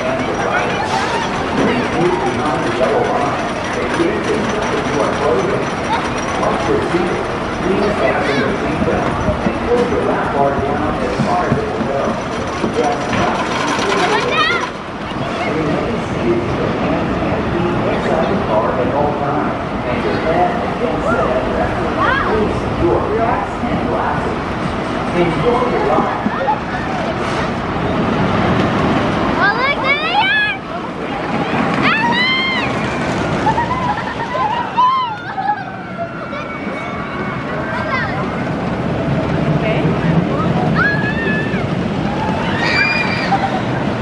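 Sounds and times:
roller coaster clattering on track: 0:00.0 - 0:44.0
riders screaming: 0:31.8 - 0:37.7, 0:40.6 - 0:43.8.

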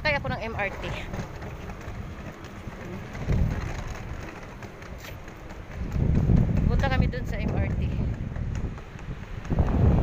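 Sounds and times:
low rumbling: 0:00.0 - 0:10.0.

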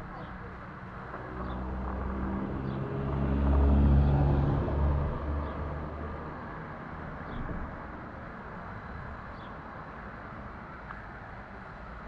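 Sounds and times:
vehicle driving past: 0:01.2 - 0:06.6.

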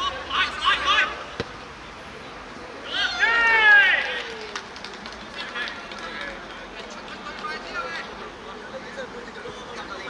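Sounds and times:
man shouting: 0:02.9 - 0:04.0.

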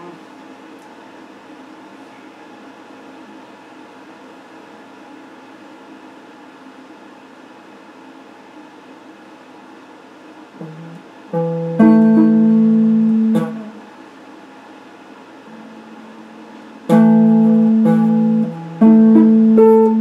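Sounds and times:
guitar amplifier hum and hiss: 0:00.0 - 0:20.0
low guitar note: 0:10.6 - 0:13.8, 0:15.5 - 0:20.0.

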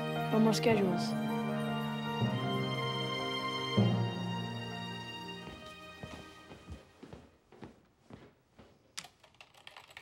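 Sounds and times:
computer keyboard typing: 0:09.0 - 0:10.0.

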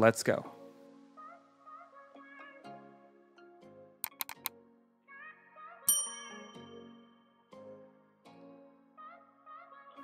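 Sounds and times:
bright bell ding: 0:05.9 - 0:07.1.

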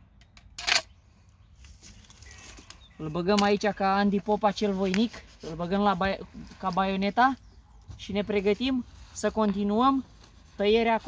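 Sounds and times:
clothing rustling and scraping: 0:04.2 - 0:11.0.

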